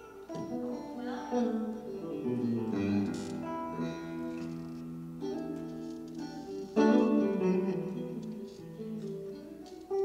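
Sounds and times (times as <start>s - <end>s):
electric guitar jazz chords: 0.0s - 10.0s.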